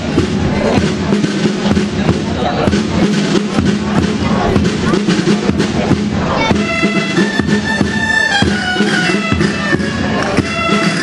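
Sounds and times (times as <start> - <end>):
side drum beating: 0.0 - 11.0
reed instrument playing dance tune: 6.3 - 11.0.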